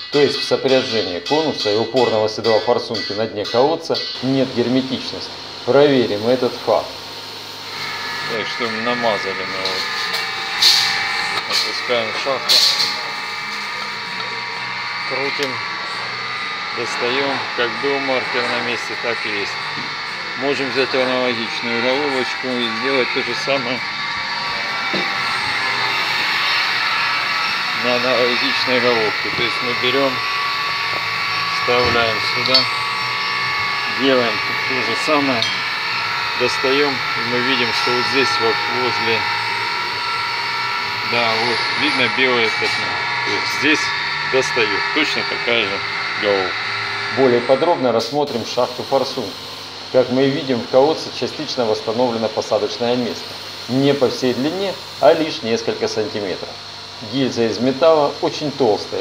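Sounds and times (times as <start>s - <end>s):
steady machine hum: 0.0s - 59.0s
motor whining: 4.2s - 59.0s.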